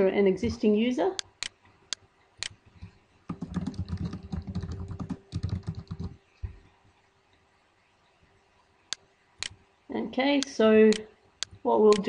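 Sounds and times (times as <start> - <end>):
typing on computer keyboard: 3.3 - 6.2.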